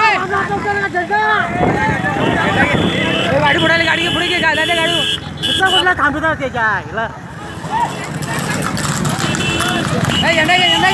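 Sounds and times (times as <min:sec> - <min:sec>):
wind and road noise: 0:00.0 - 0:10.9
motorcycle engine rumble: 0:00.2 - 0:10.9.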